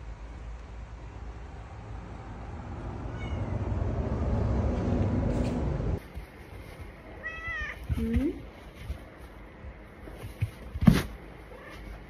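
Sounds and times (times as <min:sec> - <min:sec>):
low rumble: 0:01.0 - 0:06.0
cat meowing: 0:03.1 - 0:03.7, 0:07.2 - 0:07.9.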